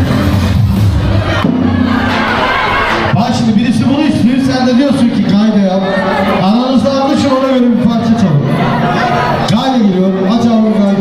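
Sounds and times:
crowd shouting and cheering: 0.0s - 11.0s
dance music: 0.0s - 11.0s.

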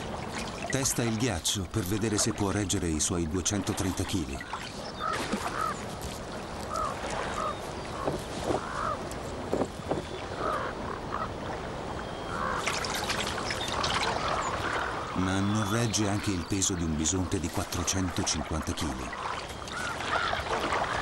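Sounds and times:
water trickling and sloshing: 0.0s - 21.0s
corvids croaking: 0.4s - 21.0s.

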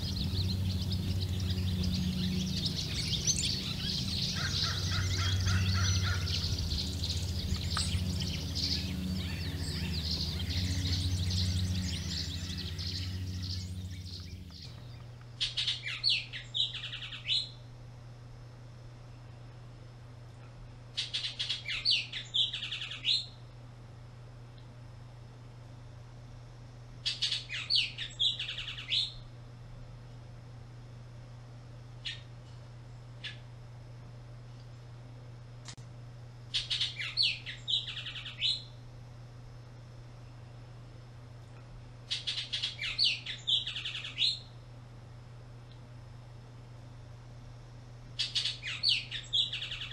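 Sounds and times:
low hum: 0.0s - 15.4s
bird singing clear notes: 0.0s - 17.5s, 42.1s - 44.5s, 48.2s - 49.9s
songbirds chirping: 0.0s - 17.5s, 36.5s - 38.8s, 41.5s - 44.6s, 48.1s - 49.9s.

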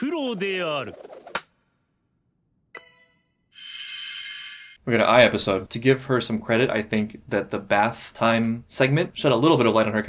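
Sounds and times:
person speaking: 0.0s - 1.0s.

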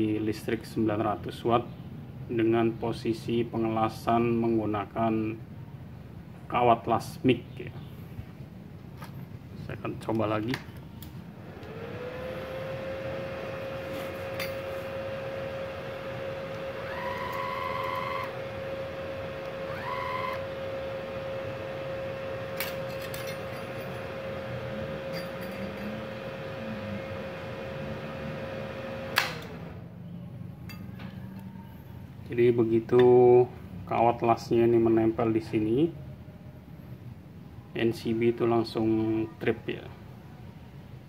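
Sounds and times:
welder whining: 11.4s - 29.8s
higher-pitched whines: 11.5s - 29.6s
sharp snap of welding wire: 29.1s - 29.5s.

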